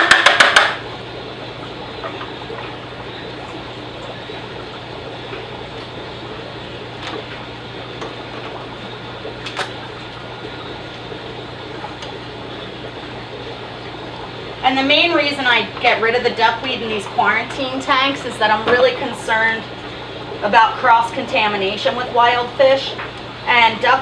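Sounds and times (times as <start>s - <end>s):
low constant hum: 0.0s - 24.0s
running water: 0.0s - 24.0s.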